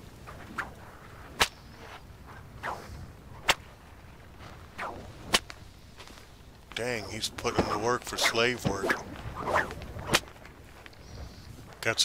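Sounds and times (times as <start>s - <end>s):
whip cracking: 0.3s - 3.7s, 4.7s - 5.6s, 7.5s - 10.4s
whip swish: 0.3s - 3.7s, 4.8s - 5.6s, 7.5s - 10.4s.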